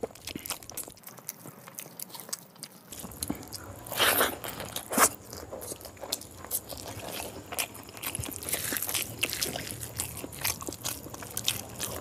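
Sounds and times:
person chewing: 0.0 - 12.0.

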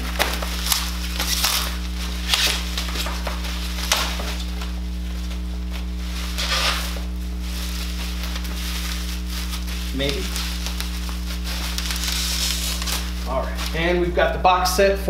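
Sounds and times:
plastic packaging crinkling: 0.0 - 14.2
low electrical hum: 0.0 - 15.0.

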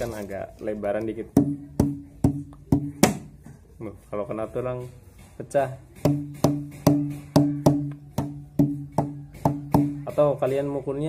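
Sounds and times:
hand striking plastic bottle: 0.8 - 3.6.

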